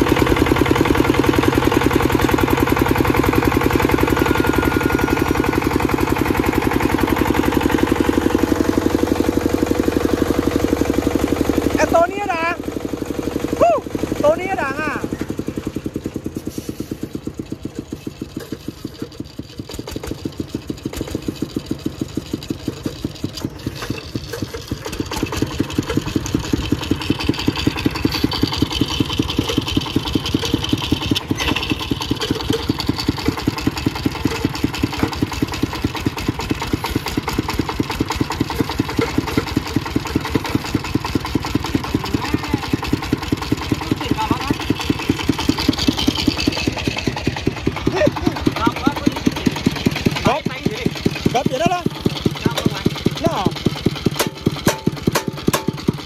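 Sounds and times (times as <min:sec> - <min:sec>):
diesel engine chugging: 0:00.0 - 0:56.0.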